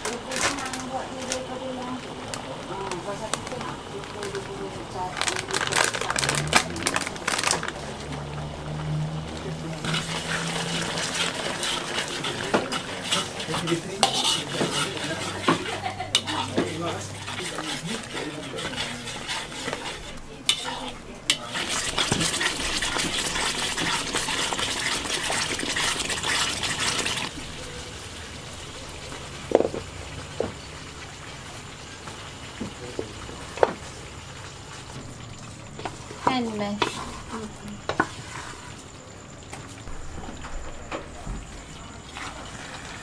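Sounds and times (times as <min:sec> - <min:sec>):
paste sizzling in a wok: 0:00.0 - 0:39.9, 0:41.4 - 0:43.0
metal spatula scraping wok: 0:04.2 - 0:27.3, 0:35.8 - 0:39.1.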